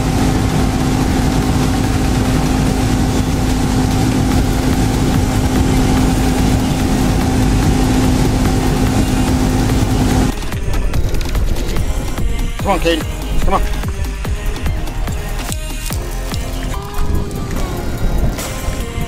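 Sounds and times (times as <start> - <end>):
outboard motor droning: 0.0 - 19.0
water noise: 0.0 - 19.0
wind noise: 0.0 - 19.0.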